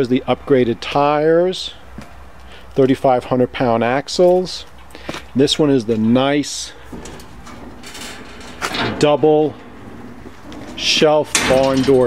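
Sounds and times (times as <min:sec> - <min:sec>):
metal door creaking and scraping: 0:05.8 - 0:12.0
handling noise: 0:06.8 - 0:12.0.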